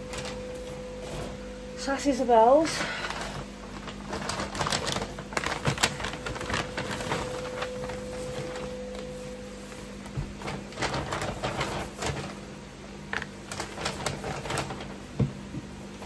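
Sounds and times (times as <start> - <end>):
faint steady hum: 0.0 - 16.0
paper bags rustling: 0.0 - 16.0.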